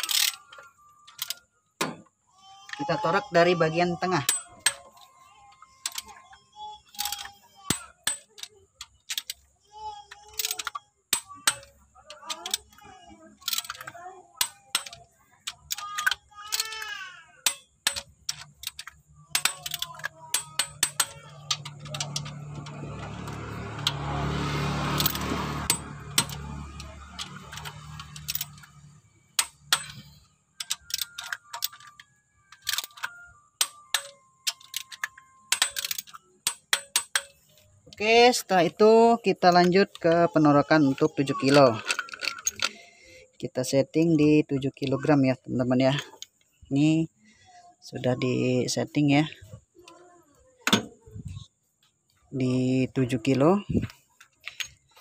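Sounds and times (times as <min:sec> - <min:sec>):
torque wrench clicking: 0:13.4 - 0:24.0, 0:25.0 - 0:32.0, 0:32.6 - 0:38.4.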